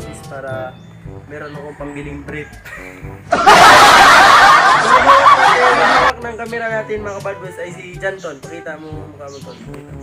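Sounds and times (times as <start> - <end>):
high-pitched laughter: 2.6 - 6.1
people talking: 4.6 - 10.0.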